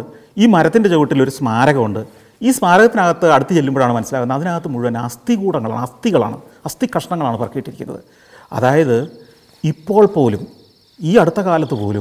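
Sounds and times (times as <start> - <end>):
man speaking: 0.0 - 12.0
cricket trilling: 5.7 - 12.0.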